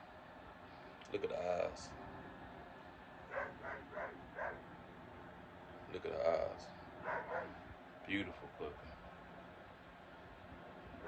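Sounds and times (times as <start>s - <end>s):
puppy crying: 3.3s - 4.6s, 7.1s - 7.6s.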